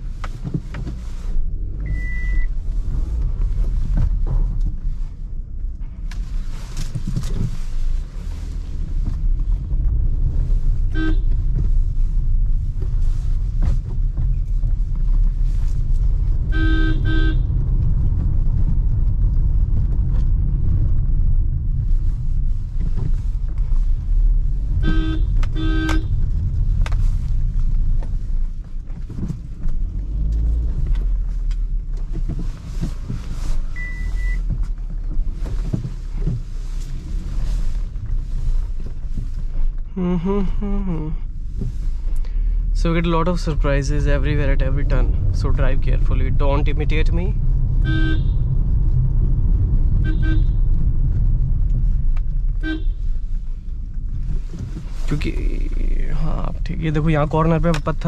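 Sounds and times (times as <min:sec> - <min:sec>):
car engine and tyre rumble: 0:00.0 - 0:58.0
short high beep: 0:01.9 - 0:02.5
car horn honks: 0:10.9 - 0:11.4, 0:16.4 - 0:17.6, 0:24.8 - 0:26.2, 0:47.8 - 0:48.5, 0:50.0 - 0:50.6, 0:52.6 - 0:53.0.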